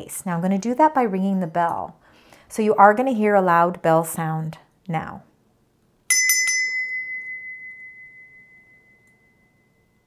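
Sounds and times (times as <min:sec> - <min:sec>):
hand bell ringing: 0:06.1 - 0:10.0.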